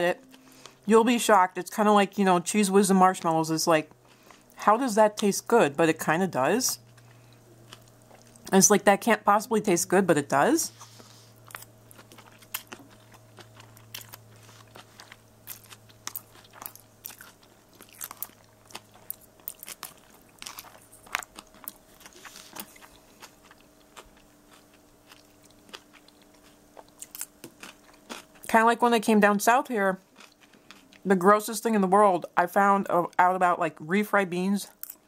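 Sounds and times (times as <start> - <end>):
chewing crunchy food: 6.7 - 8.5, 10.8 - 28.6, 30.0 - 31.1.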